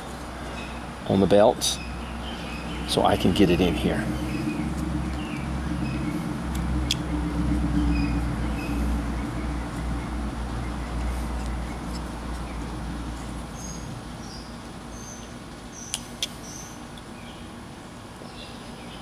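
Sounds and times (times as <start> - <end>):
vehicle engine rumbling: 0.0 - 17.0
small birds chirping: 0.0 - 19.0.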